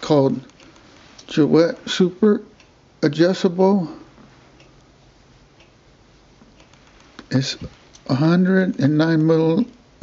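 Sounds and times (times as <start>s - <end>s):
room hum: 0.0s - 10.0s
faint regular tick: 2.6s - 2.8s.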